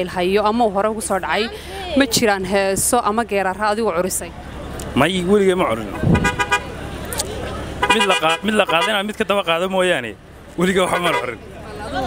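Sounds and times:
busy street noise: 0.0 - 12.0
car horn toot: 6.0 - 6.8, 7.8 - 9.1, 10.8 - 11.4.

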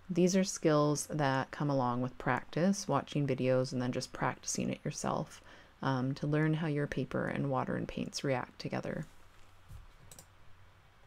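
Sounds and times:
faint clicks: 10.0 - 10.3.

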